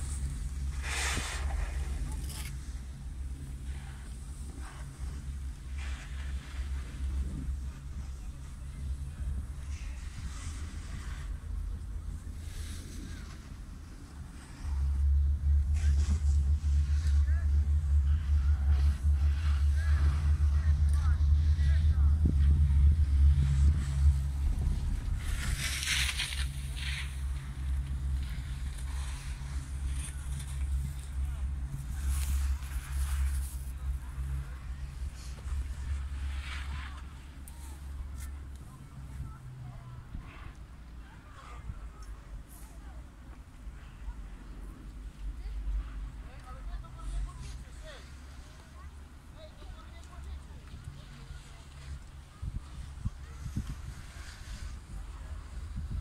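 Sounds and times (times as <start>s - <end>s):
chairlift mechanical hum: 0.0s - 56.0s.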